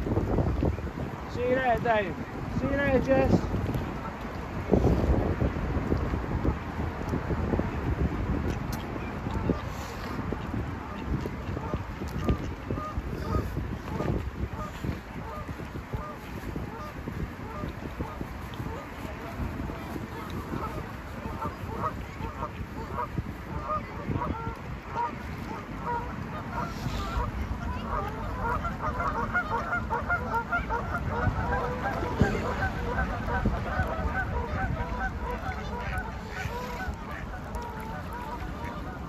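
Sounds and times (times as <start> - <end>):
waterbirds calling: 0.0 - 39.0
wind rumbling on microphone: 0.0 - 39.0
geese honking: 9.0 - 39.0.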